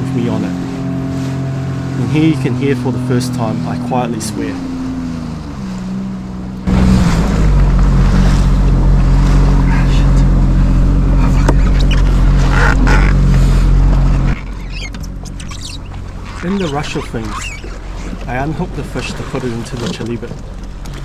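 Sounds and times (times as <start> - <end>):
jet ski engine running: 0.0 - 21.0
water rushing past hull: 0.0 - 21.0.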